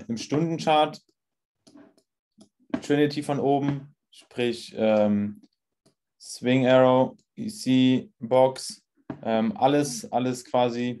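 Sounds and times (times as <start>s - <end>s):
man speaking: 0.0s - 1.1s, 2.7s - 5.5s, 6.2s - 11.0s.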